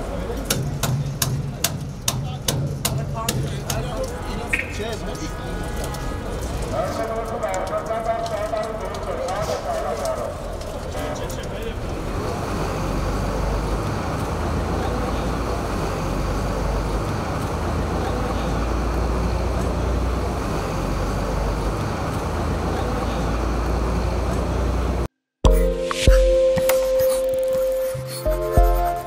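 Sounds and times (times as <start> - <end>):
vehicle traffic rumble: 0.0 - 25.1.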